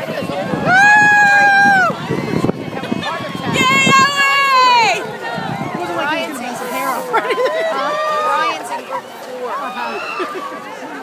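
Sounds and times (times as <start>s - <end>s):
crowd voices: 0.0s - 11.0s.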